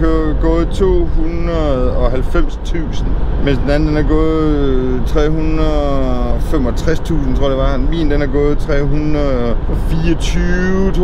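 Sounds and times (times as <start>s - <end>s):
minibus engine drone: 0.0s - 11.0s.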